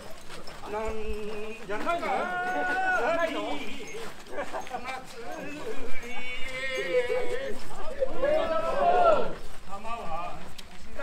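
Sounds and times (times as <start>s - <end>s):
men calling out: 0.6s - 9.5s.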